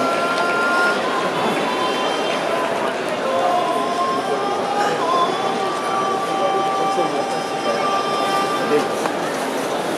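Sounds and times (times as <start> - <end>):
crowd murmuring: 0.0 - 9.9.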